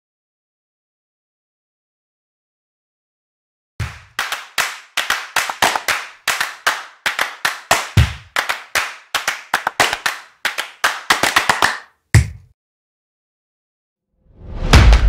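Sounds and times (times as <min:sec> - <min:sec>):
sharp clap-like hits: 0:03.8 - 0:12.4
deep booms: 0:14.4 - 0:15.0.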